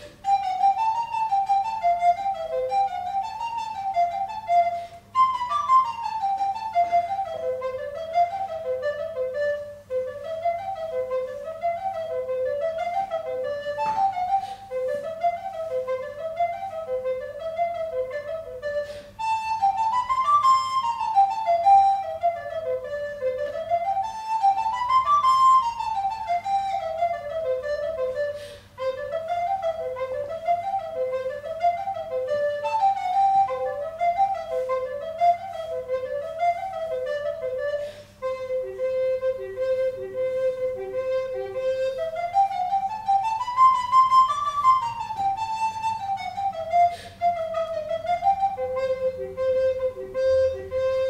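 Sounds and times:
recorder playing fast folk melody: 0.0s - 51.0s.

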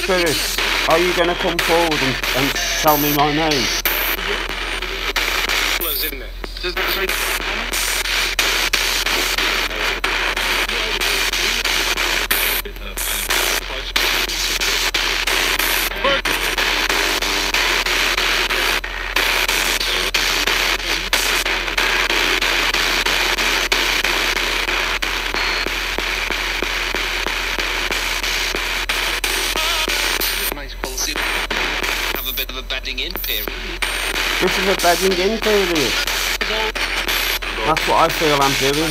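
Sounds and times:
radio static hiss: 0.0s - 38.9s
snatches of radio voices: 0.0s - 38.9s.

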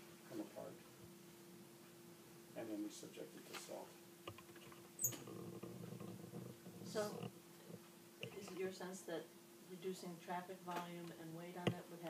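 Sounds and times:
steady hum: 0.0s - 12.0s
faint rustling: 3.4s - 9.0s.

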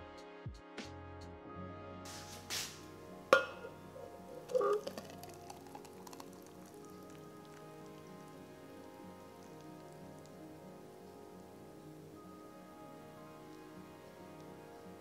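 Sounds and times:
background music: 0.0s - 15.0s
metal tumbler clunk: 3.3s - 5.0s
smoothie pouring into tumbler: 4.1s - 10.4s.

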